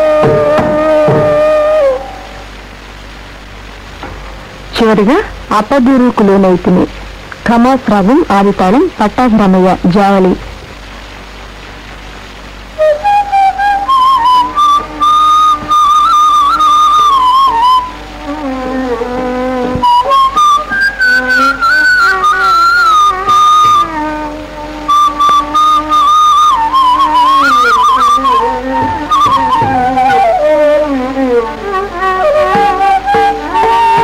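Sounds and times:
bamboo flute melody: 0:00.0 - 0:03.4, 0:12.6 - 0:34.0
lower accompanying instrument: 0:00.0 - 0:07.2, 0:12.2 - 0:34.0.

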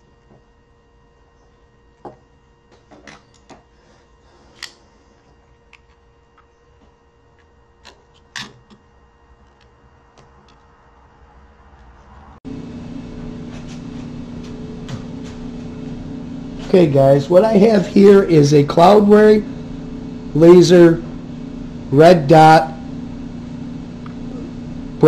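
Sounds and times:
steady shop hum: 0:00.0 - 0:25.0.

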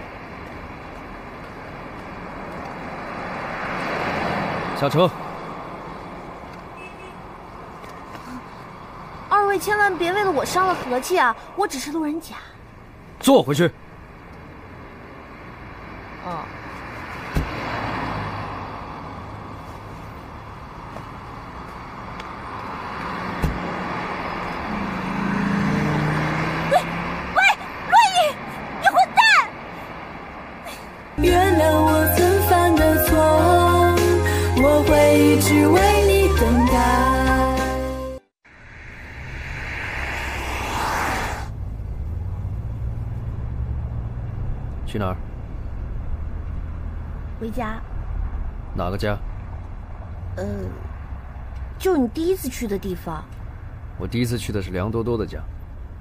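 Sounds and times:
car engine: 0:00.0 - 0:56.0
street traffic: 0:00.0 - 0:56.0.

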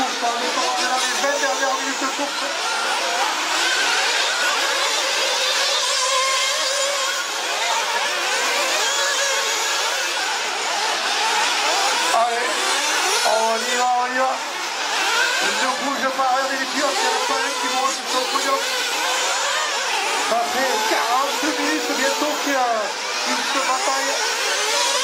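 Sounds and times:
model car engines whining: 0:00.0 - 0:25.0.

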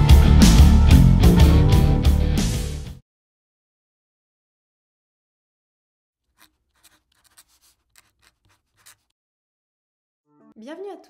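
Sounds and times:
faint scratching strokes: 0:06.3 - 0:09.1.

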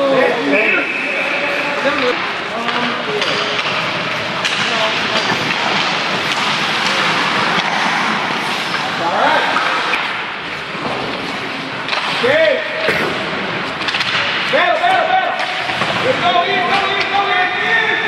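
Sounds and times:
skates and sticks on ice: 0:02.0 - 0:12.3, 0:13.7 - 0:17.8.

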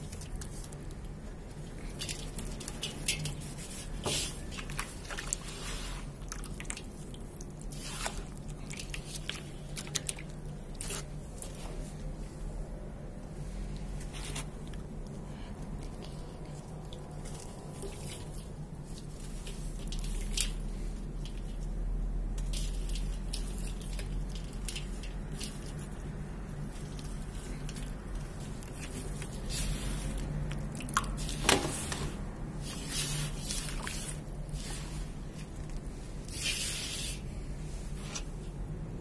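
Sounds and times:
wet mud crumbs dripping into water: 0:00.0 - 0:11.6, 0:14.6 - 0:31.6
wet mud squishing: 0:00.0 - 0:11.6, 0:14.2 - 0:21.8, 0:22.5 - 0:37.0.

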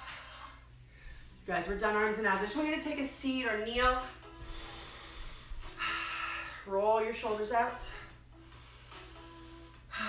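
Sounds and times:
quiet background music: 0:00.0 - 0:10.0
woman breathing hard: 0:04.2 - 0:06.7, 0:08.0 - 0:10.0.

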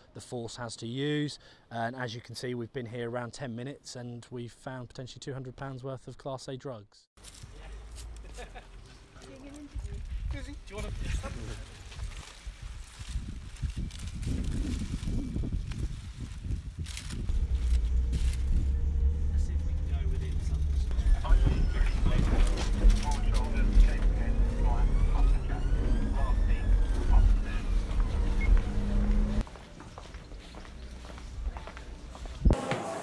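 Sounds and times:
car engine and road rumble: 0:07.2 - 0:29.5
high rising and falling tone: 0:16.8 - 0:29.4.

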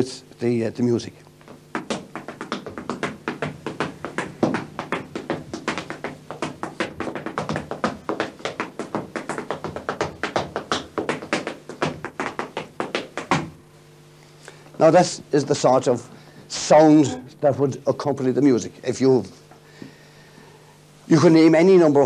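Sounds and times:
dance shoes tapping and stamping: 0:01.4 - 0:13.7.

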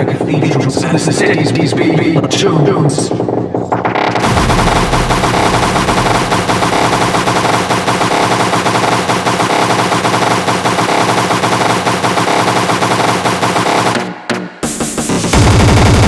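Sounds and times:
sustained distorted tones: 0:00.0 - 0:14.0
distorted kick drums rattling: 0:00.0 - 0:16.0.

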